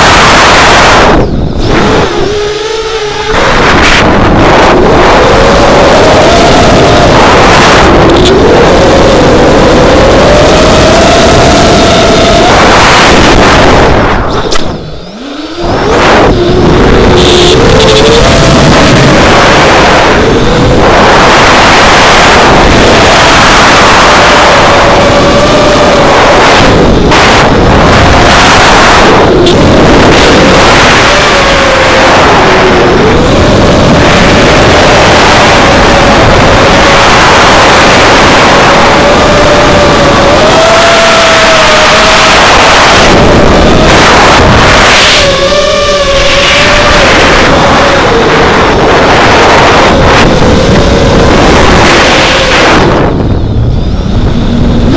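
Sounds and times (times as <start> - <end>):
loud wind rush: 0.0 - 54.9
quadcopter motors buzzing: 0.0 - 54.9.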